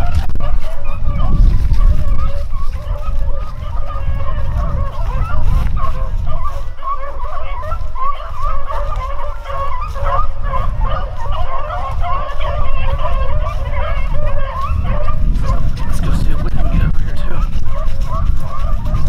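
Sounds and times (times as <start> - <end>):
microphone handling noise: 0.0 - 19.0
pack of dogs baying: 0.0 - 19.0
wind rumble: 0.0 - 19.0.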